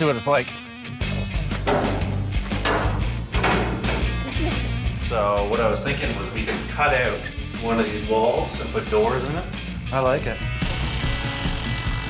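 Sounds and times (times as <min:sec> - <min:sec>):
background music with bass line: 0:00.0 - 0:12.0
sharp percussive hits: 0:01.5 - 0:04.2.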